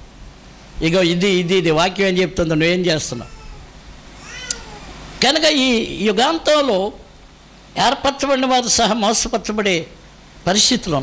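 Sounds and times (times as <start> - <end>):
cat meowing: 3.2 - 5.0.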